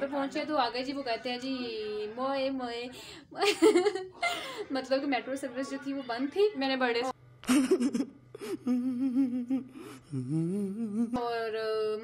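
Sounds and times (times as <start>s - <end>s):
man gasping: 8.3s - 10.9s
man whimpering and whining: 8.4s - 11.2s.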